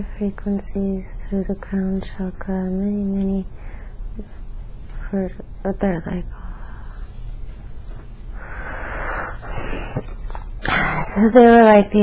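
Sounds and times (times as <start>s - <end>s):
woman breathing through mouth: 8.3s - 10.2s.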